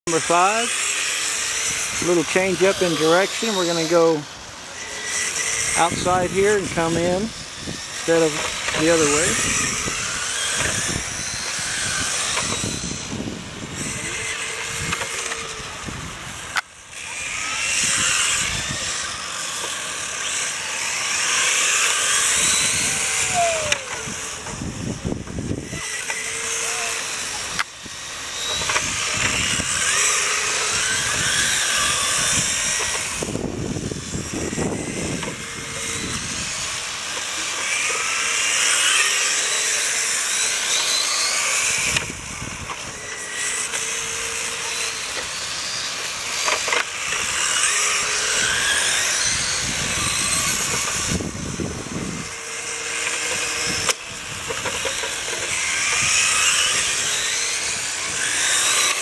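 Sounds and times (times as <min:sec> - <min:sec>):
rc car motors whining: 0:00.1 - 0:59.0.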